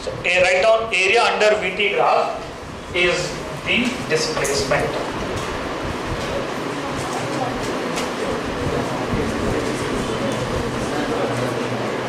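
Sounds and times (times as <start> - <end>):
steady hum and hiss: 0.0 - 12.0.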